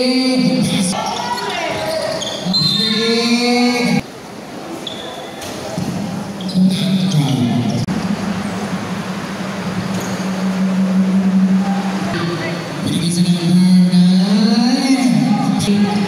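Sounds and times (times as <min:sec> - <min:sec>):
voices in a gym: 0:00.0 - 0:10.2, 0:11.4 - 0:16.0
low hum: 0:07.6 - 0:16.0.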